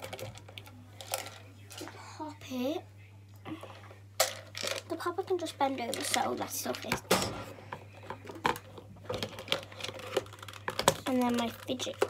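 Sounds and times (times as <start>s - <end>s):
plastic toys clicking and knocking: 0.0s - 1.9s, 4.2s - 5.1s, 5.8s - 7.4s, 8.0s - 12.0s.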